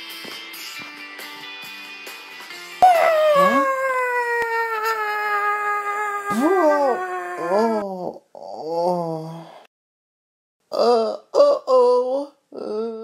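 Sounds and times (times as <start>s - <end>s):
long wailing cry falling in pitch: 2.8s - 7.8s.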